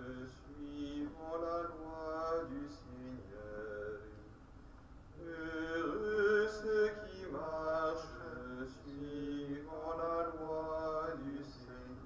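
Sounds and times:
man chanting: 0.0 - 4.2, 5.2 - 12.0.

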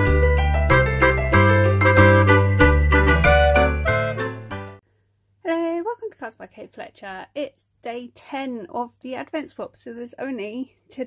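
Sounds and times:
intro music with jingling bells: 0.0 - 4.8.

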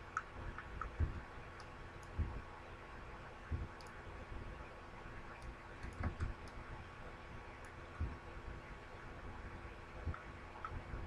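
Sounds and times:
computer mouse clicks: 0.1 - 2.2, 3.7 - 4.0, 5.3 - 6.6, 10.1 - 10.8.

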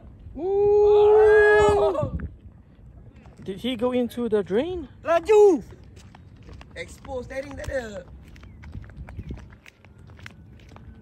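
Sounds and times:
light footsteps with clicks: 5.6 - 11.0.

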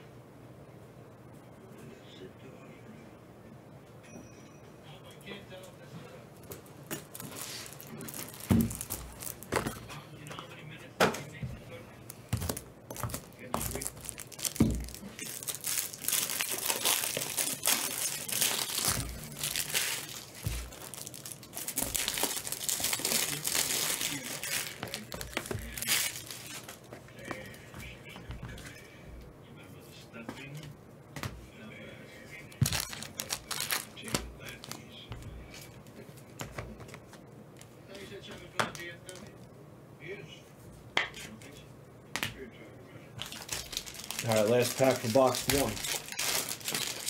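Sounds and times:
wrappers tearing and crinkling: 6.9 - 9.9, 12.1 - 26.9, 32.5 - 34.8, 43.2 - 47.0.

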